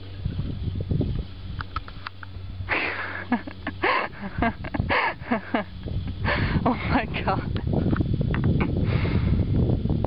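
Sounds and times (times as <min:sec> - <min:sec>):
person laughing: 0:02.7 - 0:07.4.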